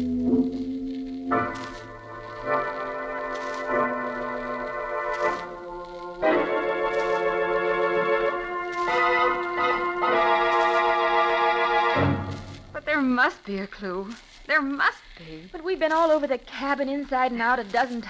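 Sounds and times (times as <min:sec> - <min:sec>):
organ playing held chords: 0:01.3 - 0:12.2.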